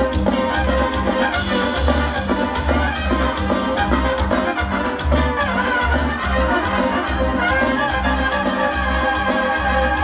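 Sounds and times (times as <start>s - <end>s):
pulsing bass line: 0.0s - 10.0s
trumpets holding notes: 0.0s - 10.0s.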